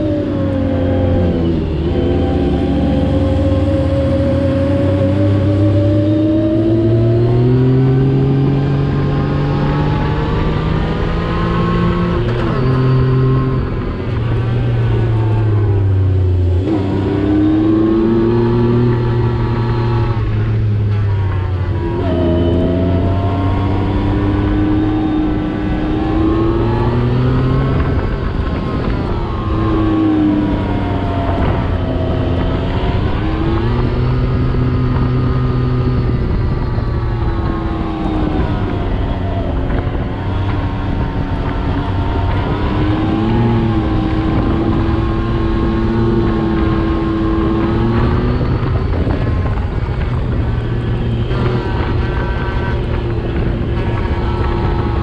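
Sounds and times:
engine revving under load: 0.0s - 55.0s.

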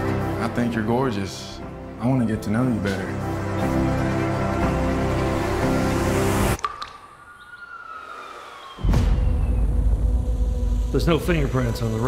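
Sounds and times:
trailer music: 0.0s - 7.2s, 8.8s - 12.0s
deep bass boom: 8.8s - 11.5s.

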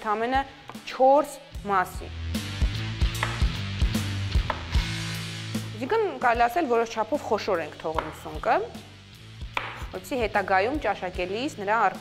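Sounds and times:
background music: 0.0s - 12.0s
knife chopping on wooden board: 3.0s - 3.6s, 4.4s - 4.8s, 7.9s - 8.3s, 9.4s - 10.0s.

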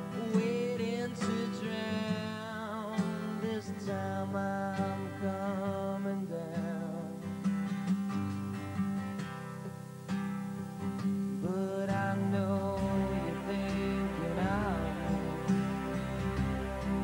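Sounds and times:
bass: 0.0s - 5.6s, 9.8s - 17.0s
drums: 0.0s - 17.0s
strummed acoustic guitar: 0.0s - 17.0s
man singing long wavering notes: 11.4s - 17.0s.

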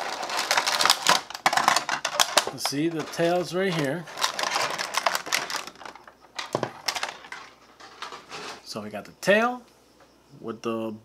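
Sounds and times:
plastic blister pack crinkling: 0.0s - 8.6s.

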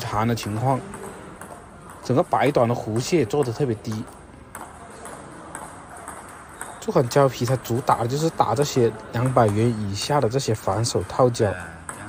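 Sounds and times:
table tennis ball ticking: 0.0s - 12.0s.

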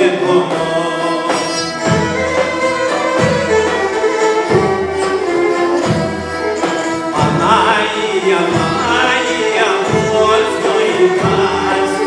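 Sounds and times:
bowed strings: 0.0s - 12.0s
folk singing: 0.0s - 12.0s
plucked lutes: 0.0s - 12.0s.

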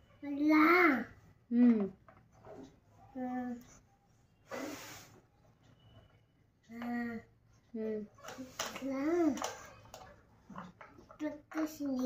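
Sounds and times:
breathy hiss: 4.5s - 5.2s.

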